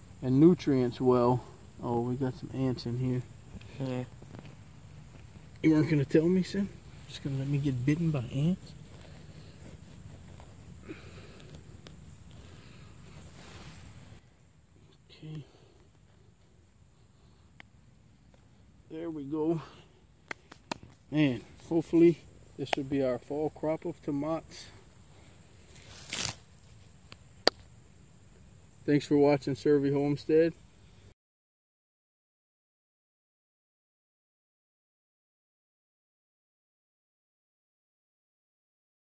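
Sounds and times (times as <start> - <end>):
low steady rumble: 0.0 - 20.3
hands rustling soil: 3.5 - 18.7, 24.5 - 27.6
brief rustle: 25.7 - 26.9.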